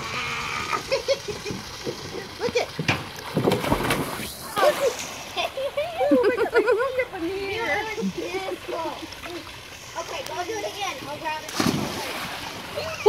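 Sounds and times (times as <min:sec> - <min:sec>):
steady rush of water: 0:00.0 - 0:13.0
water splashing in pool: 0:00.0 - 0:13.0.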